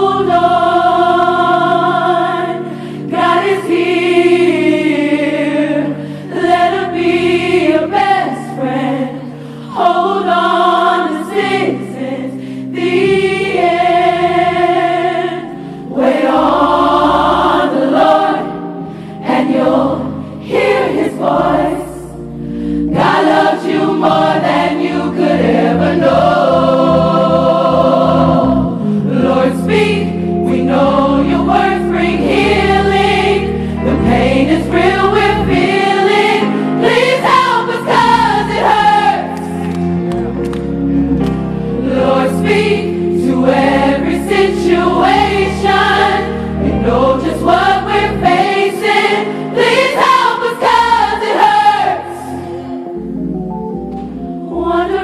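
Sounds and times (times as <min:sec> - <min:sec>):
gospel choir singing: 0:00.0 - 0:53.2, 0:54.1 - 0:55.0
organ sustained low notes: 0:39.5 - 0:48.4.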